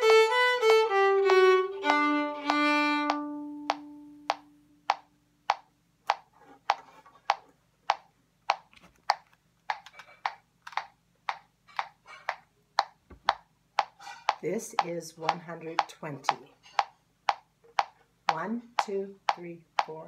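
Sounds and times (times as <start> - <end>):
bowed violin note: 0.0 - 4.4
metronome clicking: 0.0 - 20.0.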